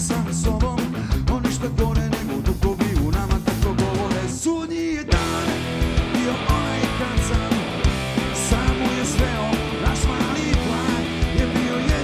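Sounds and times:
steady drum beat: 0:00.0 - 0:04.5, 0:05.1 - 0:12.0
bass guitar: 0:00.0 - 0:12.0
electric guitars: 0:00.0 - 0:12.0.

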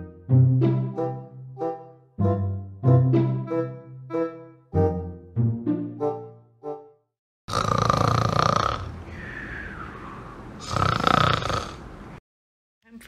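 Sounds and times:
dog snoring: 0:07.5 - 0:09.0, 0:10.6 - 0:11.9.

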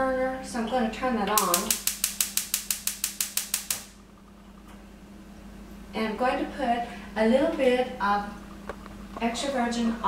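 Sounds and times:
faint steady hum: 0:00.0 - 0:10.0
stove spark igniter clicking: 0:01.3 - 0:04.0.

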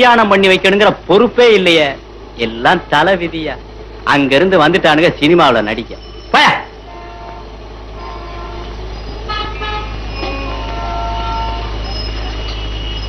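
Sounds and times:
steady low hum: 0:00.0 - 0:13.0
faint horn-like tones: 0:06.1 - 0:13.0.

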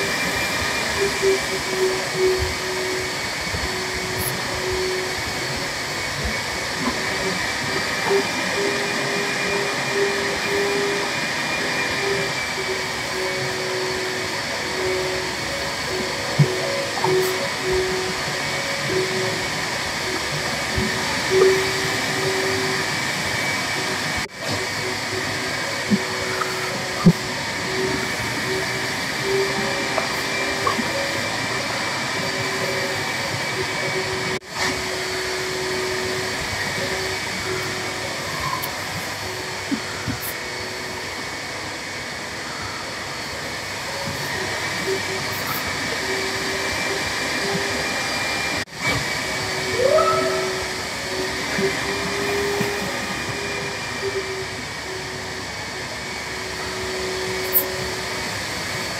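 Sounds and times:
whirring hum with wavering tone: 0:00.0 - 0:58.9.

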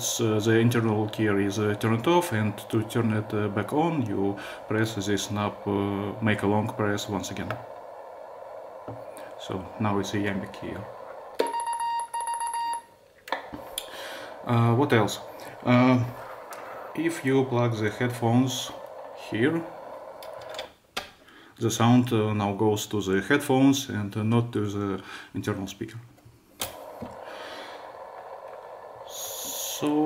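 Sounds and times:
radio static hiss: 0:00.0 - 0:11.4, 0:13.5 - 0:20.4, 0:26.6 - 0:30.0
steady morse beep: 0:09.1 - 0:13.0.

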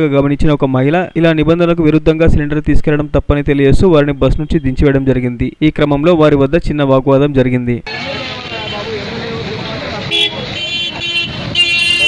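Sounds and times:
traffic noise: 0:07.8 - 0:12.0
vehicle horns honking: 0:07.9 - 0:09.2, 0:09.8 - 0:12.0.

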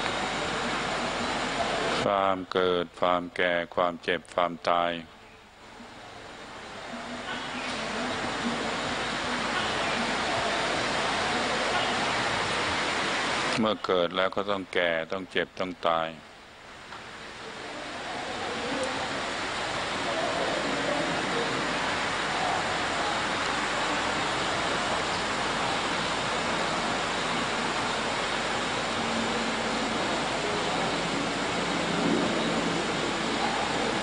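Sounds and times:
steady rushing noise: 0:00.0 - 0:02.2, 0:05.5 - 0:34.0.

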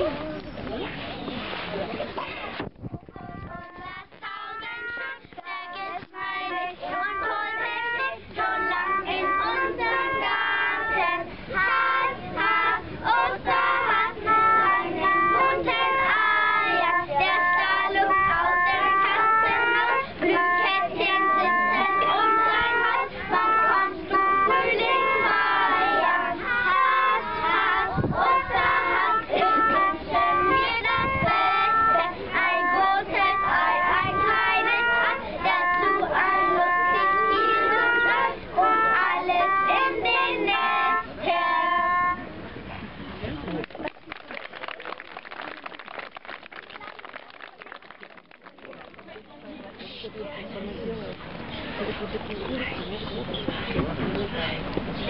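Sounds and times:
children singing together: 0:03.1 - 0:42.3.

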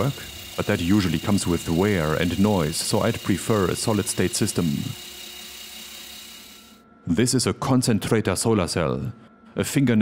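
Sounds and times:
cordless drill whirring: 0:00.0 - 0:06.8.

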